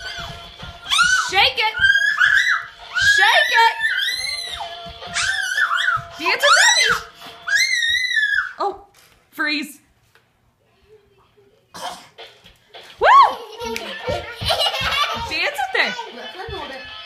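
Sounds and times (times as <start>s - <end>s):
music playing: 0.0s - 7.4s, 12.2s - 17.0s
toddlers squealing and shrieking: 0.0s - 8.6s.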